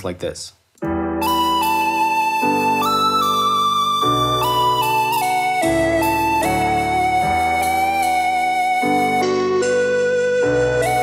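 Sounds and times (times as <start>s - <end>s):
synth lead melody with vibrato: 0.9s - 11.0s.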